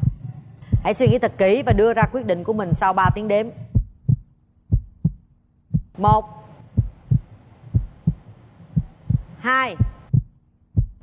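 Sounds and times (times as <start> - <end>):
faint hum: 0.0 - 11.0
heartbeat thumps: 0.0 - 11.0.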